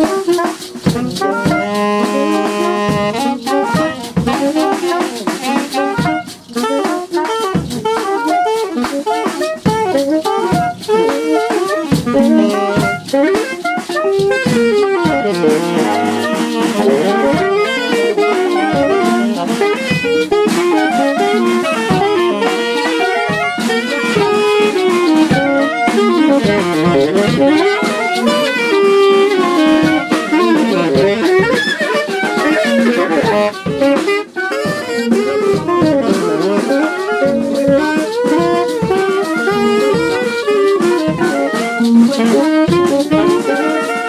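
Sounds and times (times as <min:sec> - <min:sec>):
drum kit playing: 0:00.0 - 0:44.0
saxophones playing fast lines: 0:00.0 - 0:44.0.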